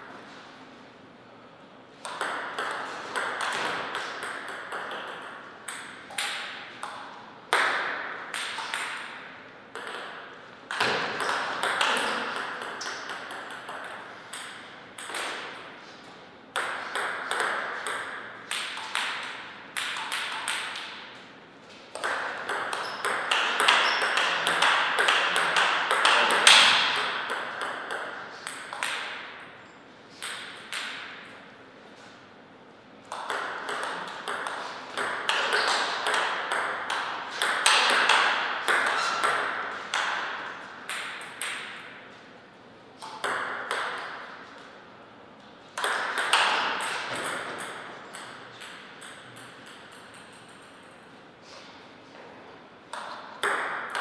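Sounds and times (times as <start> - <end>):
table tennis ball clicking: 33.1 - 40.2.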